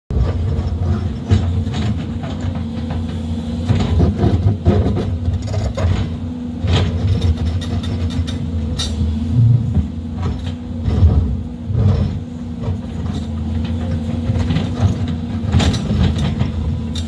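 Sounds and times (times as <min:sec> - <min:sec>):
diesel engine droning: 0:00.1 - 0:17.0.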